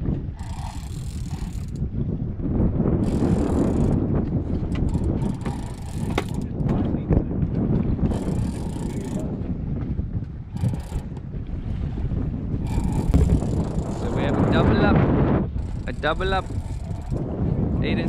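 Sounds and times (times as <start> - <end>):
wind buffeting microphone: 0.0 - 18.0
fishing reel cranking: 0.4 - 1.8, 3.0 - 4.0, 4.8 - 6.5, 8.1 - 9.2, 10.5 - 11.1, 12.6 - 14.1, 15.6 - 17.2
reel clicks: 0.4 - 1.9, 3.0 - 4.0, 4.6 - 6.8, 8.1 - 9.2, 10.5 - 11.2, 12.6 - 13.9, 15.6 - 17.2.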